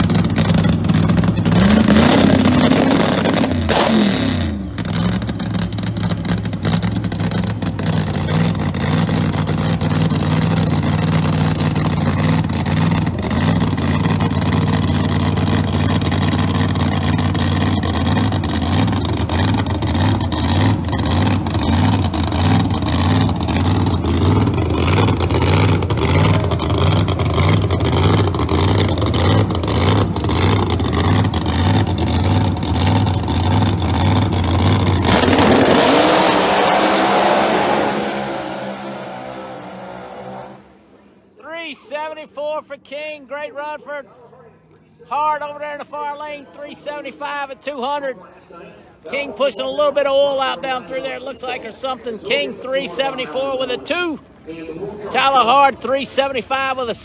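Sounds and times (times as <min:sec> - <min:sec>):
drag car engine idling: 0:00.0 - 0:36.8
engine revving: 0:00.0 - 0:41.0.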